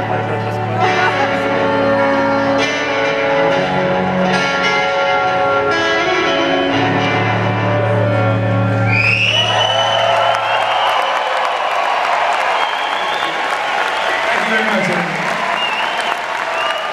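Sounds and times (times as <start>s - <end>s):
guitar chord ringing: 0.0s - 8.9s
crowd applauding and cheering: 7.9s - 16.9s.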